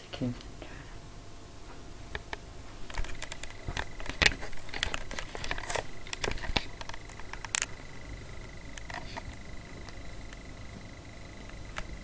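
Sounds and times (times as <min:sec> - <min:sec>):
faint high whine: 0:00.0 - 0:12.0
handling rustling and clicking: 0:02.2 - 0:07.8.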